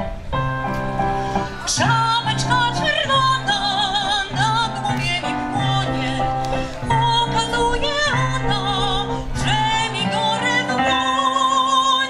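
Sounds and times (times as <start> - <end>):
piano accompaniment: 0.0 - 12.0
woman singing operatically: 1.7 - 12.0.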